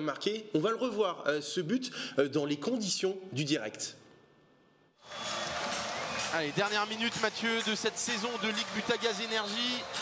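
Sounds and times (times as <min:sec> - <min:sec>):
crowd noise in indoor arena: 0:05.0 - 0:10.0.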